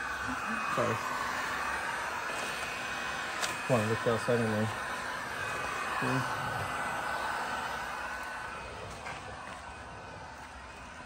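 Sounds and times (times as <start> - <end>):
heat gun blowing: 0.0 - 11.0.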